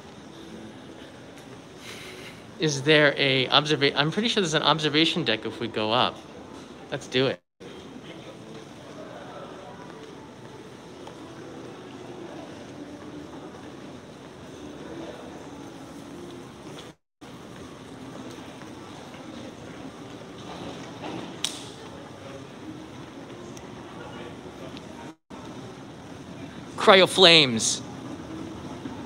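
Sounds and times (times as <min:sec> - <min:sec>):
faint distant voices: 0:06.3 - 0:16.3
sharp click: 0:21.4 - 0:21.8.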